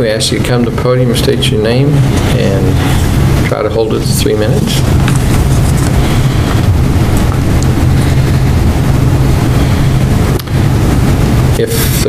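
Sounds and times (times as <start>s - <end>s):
low hum: 0.0s - 12.0s
steady rushing noise: 0.0s - 12.0s.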